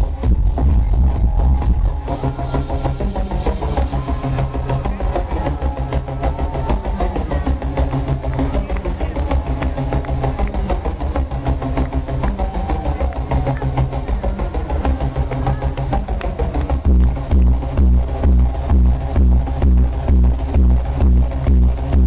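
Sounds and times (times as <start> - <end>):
electronic dance music: 0.0 - 22.0
heavy kick drum: 0.0 - 22.0.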